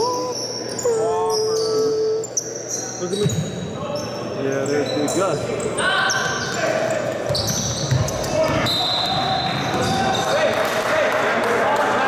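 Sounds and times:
sneaker squeaks: 0.0 - 10.4.

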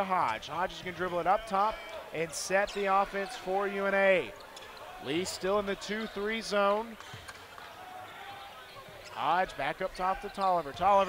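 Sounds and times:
gymnasium murmur: 0.0 - 11.0.

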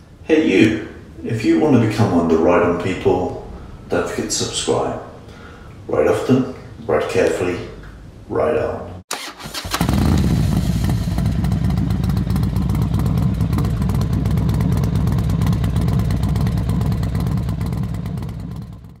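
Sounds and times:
motorcycle engine cranking clicks: 9.1 - 10.2
motorcycle engine running: 9.6 - 19.0.

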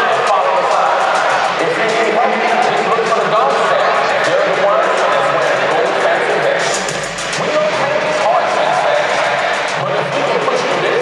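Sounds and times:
crowd chatter: 0.0 - 11.0
voice over public address speakers: 0.0 - 11.0.

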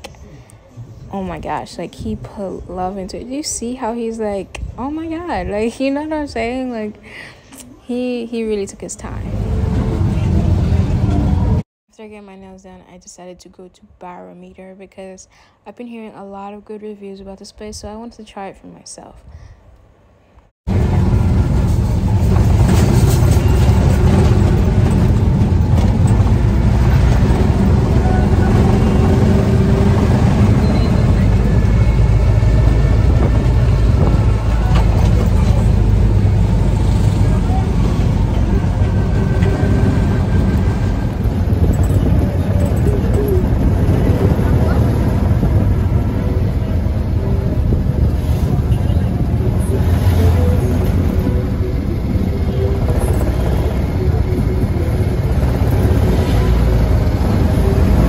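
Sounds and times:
car engine and road noise: 8.4 - 11.7, 19.9 - 58.0
indistinct voices: 24.0 - 58.0.

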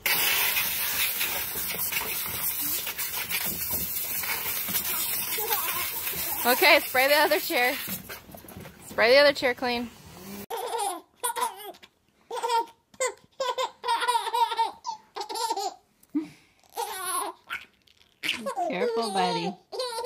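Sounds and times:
baby giggling: 10.5 - 15.8, 18.2 - 20.0.

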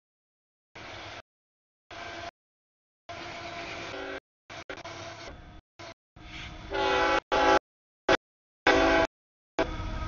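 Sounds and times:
locomotive horn: 3.2 - 5.1, 5.8 - 10.0
freight train rumble: 5.2 - 10.0.

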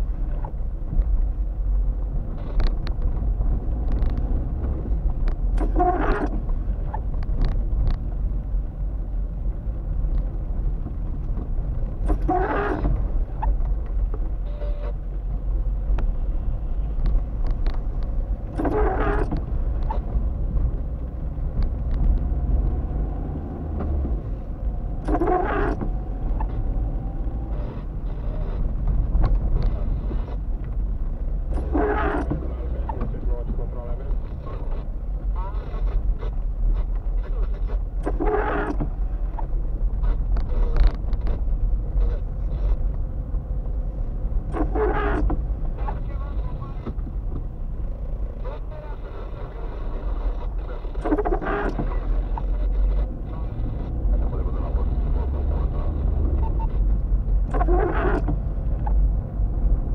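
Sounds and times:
car engine and tyre rumble: 0.0 - 59.9
windscreen wipers sweeping wet glass: 0.0 - 59.9.

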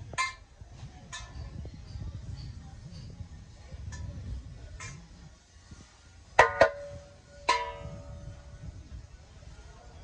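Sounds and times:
brass basin tapped by hand: 6.4 - 8.1.

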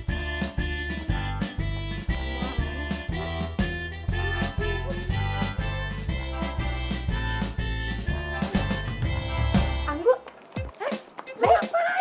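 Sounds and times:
women's wordless exclamations: 10.9 - 12.0.

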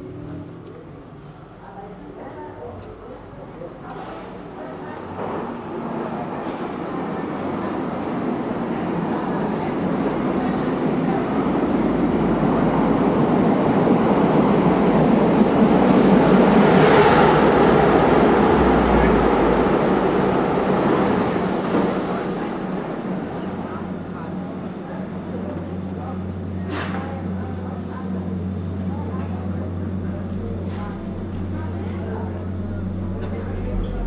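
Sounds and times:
dense rushing rumble: 14.7 - 24.4, 29.8 - 34.0.

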